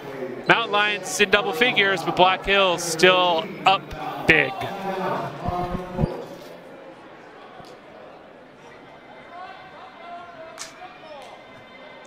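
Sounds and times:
indistinct crowd chatter: 0:00.0 - 0:12.0.

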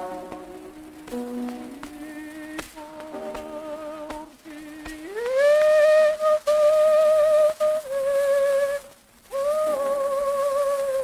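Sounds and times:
old record surface hiss: 0:00.0 - 0:11.0
operatic soprano singing: 0:00.0 - 0:11.0.

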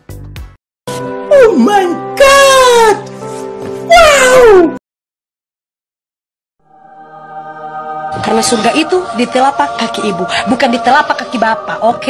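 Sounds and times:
background music: 0:00.0 - 0:04.8, 0:06.6 - 0:12.0.

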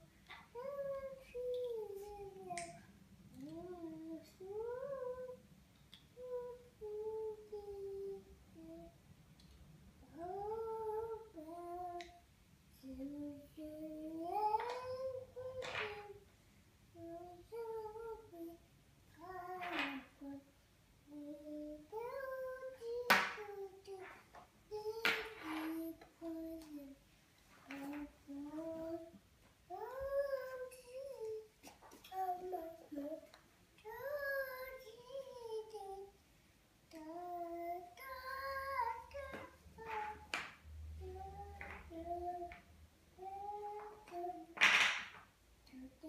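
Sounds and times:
toddler singing: 0:00.0 - 0:05.4, 0:06.0 - 0:09.0, 0:10.0 - 0:16.3, 0:16.9 - 0:27.0, 0:27.6 - 0:36.2, 0:36.9 - 0:44.7, 0:45.6 - 0:46.0.

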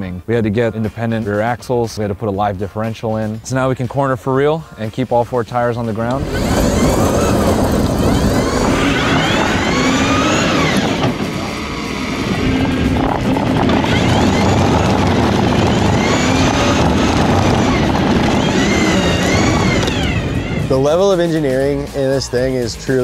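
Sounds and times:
tyres squealing: 0:06.2 - 0:12.4, 0:13.8 - 0:20.8.

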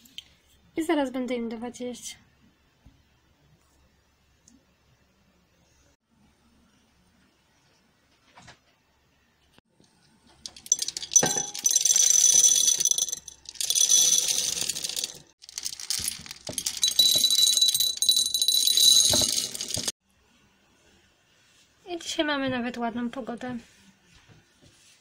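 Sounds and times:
dry kibble pouring into bowls: 0:10.5 - 0:19.9.

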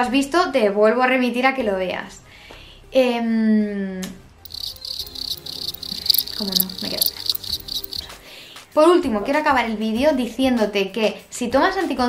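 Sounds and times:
cricket chirping: 0:04.5 - 0:08.2.

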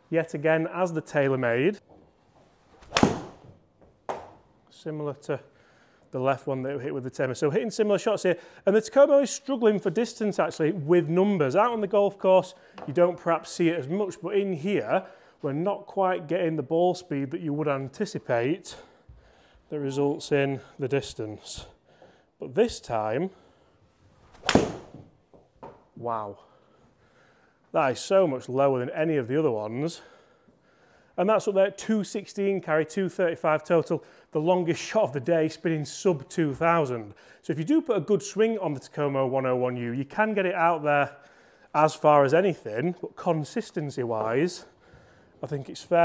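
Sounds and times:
golf club swish: 0:02.5 - 0:03.6, 0:24.1 - 0:25.1
golf ball strike: 0:02.8 - 0:04.3, 0:24.4 - 0:25.0.

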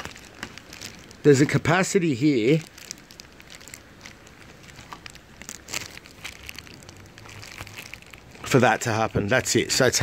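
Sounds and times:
plastic crinkling: 0:00.0 - 0:09.9.

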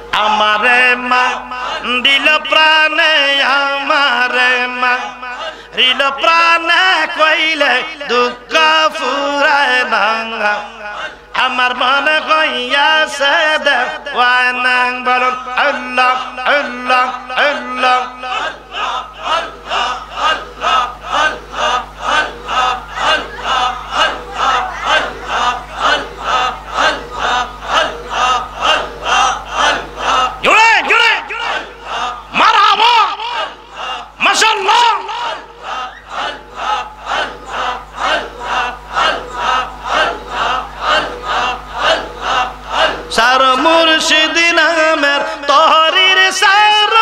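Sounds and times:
many voices chanting in unison: 0:00.0 - 0:47.0.

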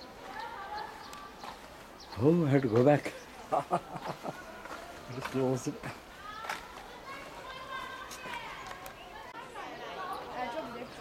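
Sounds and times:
distant children calling and chattering: 0:00.0 - 0:11.0.

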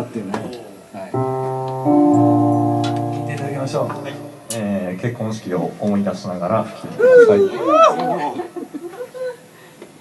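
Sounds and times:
electric keyboard chords: 0:01.1 - 0:04.9.

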